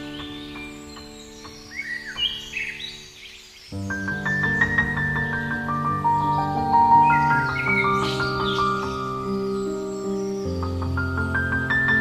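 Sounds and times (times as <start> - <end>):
bird chirps: 0.0 - 12.0
piano notes: 0.0 - 12.0.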